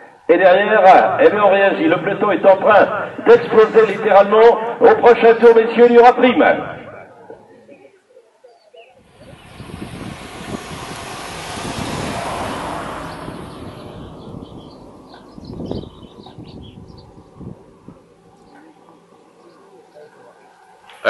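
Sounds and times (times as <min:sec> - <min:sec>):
bicycles passing by: 0:09.0 - 0:21.0.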